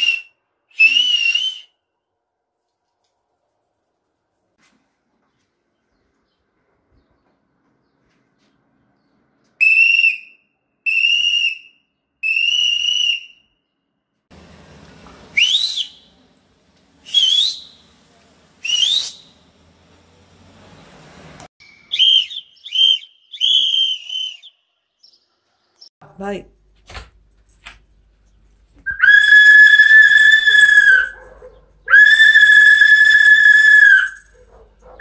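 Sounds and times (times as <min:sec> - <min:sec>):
loud shrill whistling: 0:00.0 - 0:01.8, 0:09.6 - 0:13.6, 0:15.3 - 0:16.1, 0:17.0 - 0:17.9, 0:18.6 - 0:19.4, 0:21.6 - 0:24.7, 0:28.9 - 0:31.2, 0:31.9 - 0:34.4.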